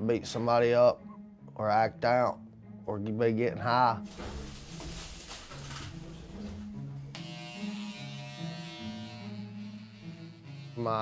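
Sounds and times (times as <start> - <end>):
electric hair clippers buzzing: 7.1 - 11.0.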